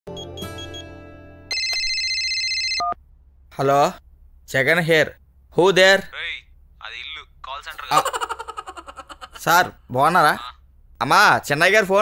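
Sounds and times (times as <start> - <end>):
mobile phone ringing: 1.5 - 3.0.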